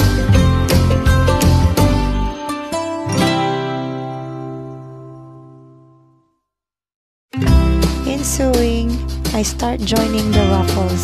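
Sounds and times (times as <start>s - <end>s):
acoustic guitar chord strummed: 0.0s - 6.2s.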